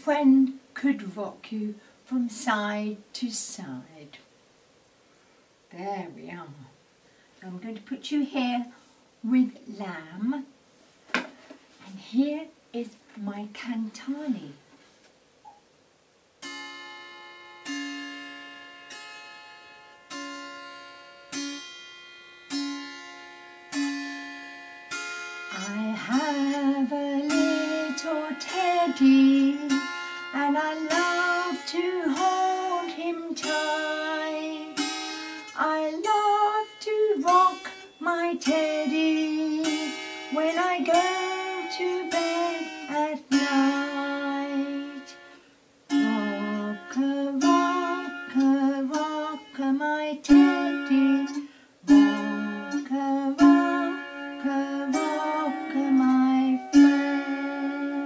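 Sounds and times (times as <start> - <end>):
plucked zither notes: 16.4 - 58.0
woman singing slow melody: 25.5 - 58.0.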